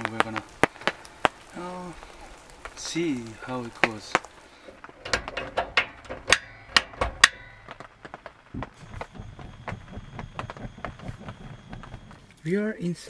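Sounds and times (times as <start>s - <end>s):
faint steady high tone: 8.8s - 13.0s.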